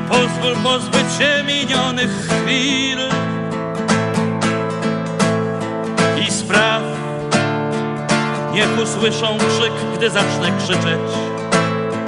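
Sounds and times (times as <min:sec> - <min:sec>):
classical guitar chords: 0:00.0 - 0:12.0.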